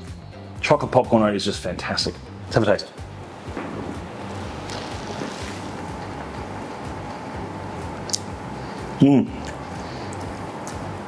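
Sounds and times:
ventilation hiss and hum: 0:00.0 - 0:11.0
faint steady whine: 0:03.0 - 0:11.0.

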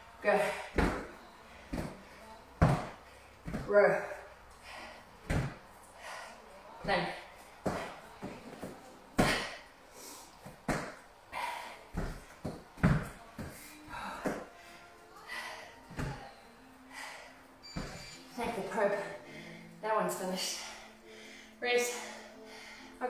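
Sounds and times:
feet landing on rubber flooring: 0:02.6 - 0:03.7, 0:05.3 - 0:05.6, 0:12.0 - 0:13.6.

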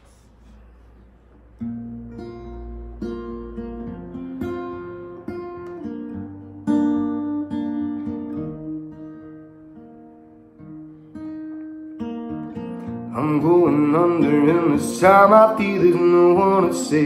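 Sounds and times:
acoustic guitar strumming chords: 0:00.0 - 0:17.0.

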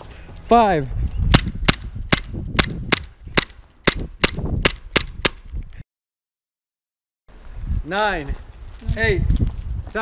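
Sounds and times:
airsoft pistol shots: 0:01.3 - 0:05.4.

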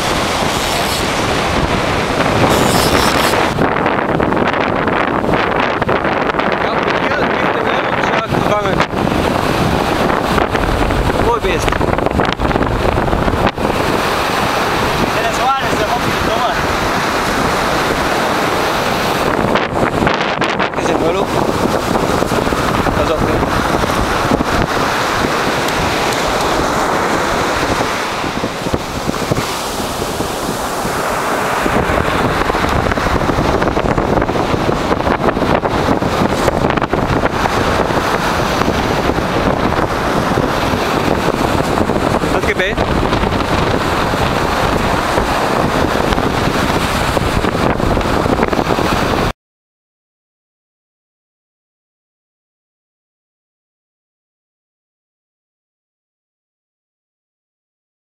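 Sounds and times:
surf breaking on shore: 0:00.0 - 0:49.3
wind buffeting microphone: 0:00.0 - 0:49.3.

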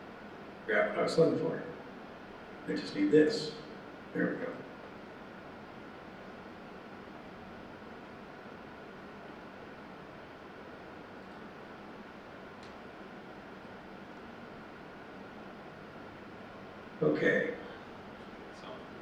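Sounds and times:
faint high hum: 0:00.0 - 0:19.0
room hiss: 0:00.0 - 0:19.0
small click: 0:12.6 - 0:12.8.

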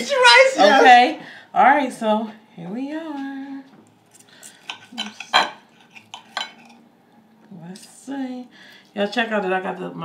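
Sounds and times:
knife and fork scraping plate: 0:04.6 - 0:06.8.

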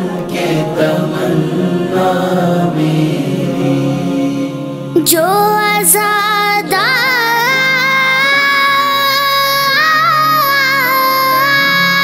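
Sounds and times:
wordless vocal chorus drone: 0:00.0 - 0:12.0.

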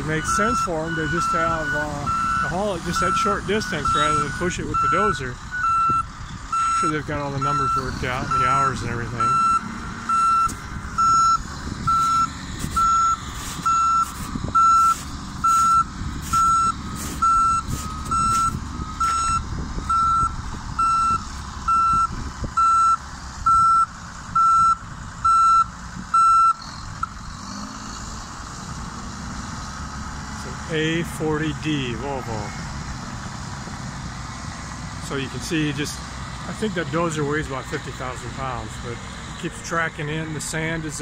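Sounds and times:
backup alarm beeping: 0:00.0 - 0:27.2
diesel engines rumbling: 0:00.0 - 0:41.0.

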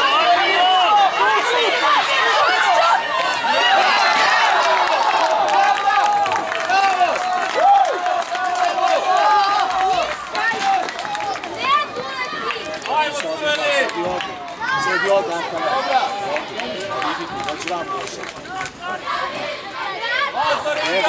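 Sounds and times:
children and adults shouting: 0:00.0 - 0:21.0.

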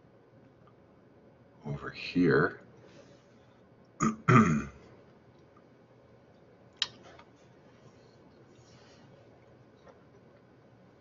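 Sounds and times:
man clearing throat: 0:04.0 - 0:04.9.

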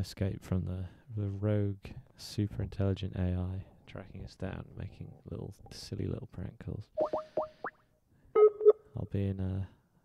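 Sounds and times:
rising electronic bloops: 0:07.0 - 0:08.9.

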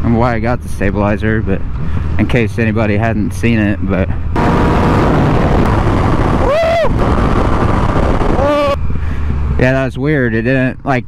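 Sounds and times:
wind rushing on microphone: 0:04.1 - 0:09.9
motorcycle engine at speed: 0:04.4 - 0:08.8
person shouting: 0:06.4 - 0:07.0, 0:08.4 - 0:08.8.

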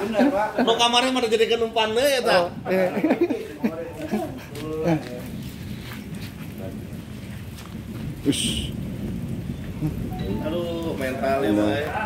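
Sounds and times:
man's voice: 0:10.2 - 0:12.0.

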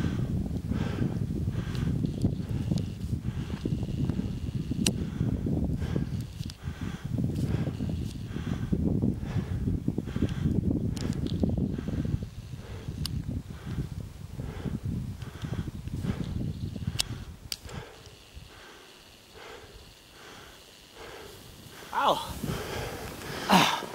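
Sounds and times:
wind buffeting microphone: 0:00.0 - 0:18.7, 0:21.0 - 0:23.9
skis swishing in snow: 0:21.2 - 0:23.9.

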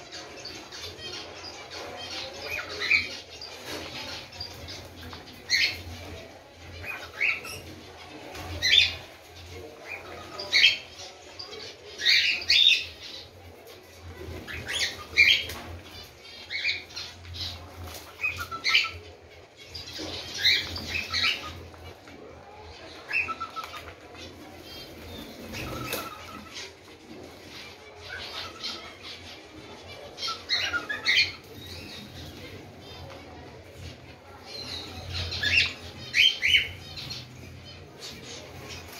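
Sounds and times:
birds chirping: 0:00.0 - 0:38.9
birds pecking at seed: 0:00.0 - 0:38.9.

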